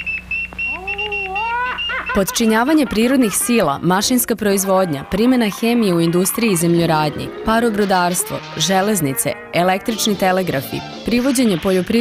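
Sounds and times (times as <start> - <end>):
low steady hum: 0.0 - 9.8
wavering pitched sound: 0.6 - 2.2, 4.7 - 10.4.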